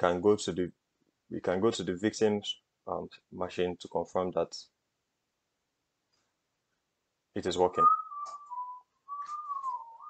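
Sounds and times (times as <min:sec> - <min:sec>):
person whistling: 0:07.8 - 0:10.0.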